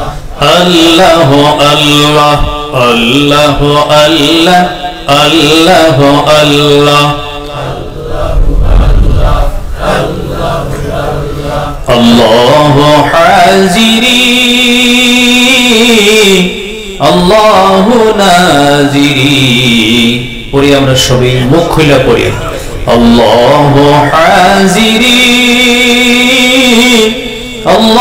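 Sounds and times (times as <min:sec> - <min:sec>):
man chanting: 0:00.0 - 0:28.0.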